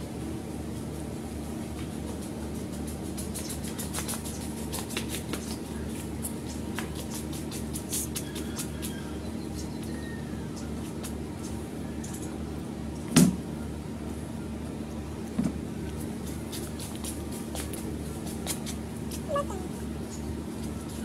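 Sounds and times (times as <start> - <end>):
low background hum: 0.0 - 21.0.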